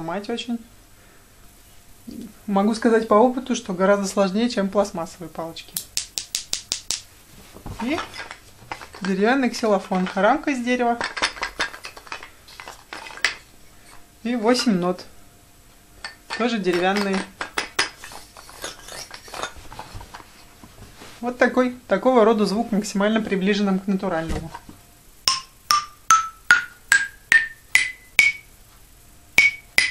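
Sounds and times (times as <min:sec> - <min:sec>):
sticks tapping toy xylophone: 0:05.8 - 0:07.0, 0:16.0 - 0:18.0, 0:25.3 - 0:28.5, 0:29.4 - 0:29.9
wooden mallets clacking: 0:05.8 - 0:07.1, 0:07.8 - 0:13.5, 0:16.0 - 0:19.6, 0:25.3 - 0:28.5, 0:29.4 - 0:29.9.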